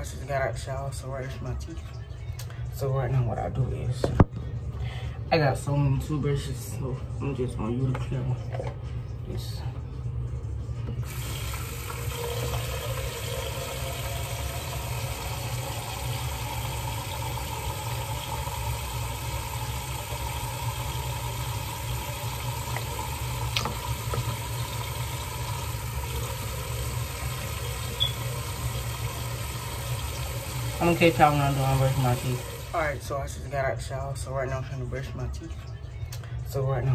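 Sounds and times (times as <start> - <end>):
running water hiss: 11.1 - 32.9.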